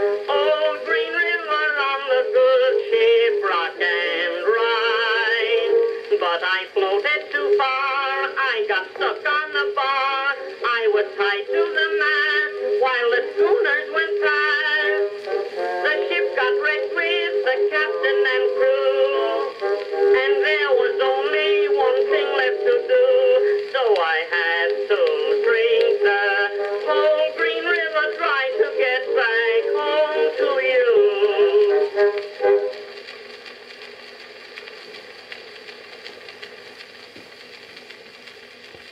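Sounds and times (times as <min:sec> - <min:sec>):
old phonograph song with orchestra: 0:00.0 - 0:38.9
record surface hiss: 0:00.0 - 0:38.9.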